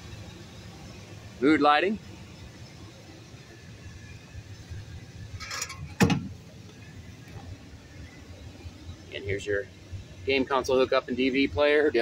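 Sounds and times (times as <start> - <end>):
van cabin hum: 0.0 - 12.0.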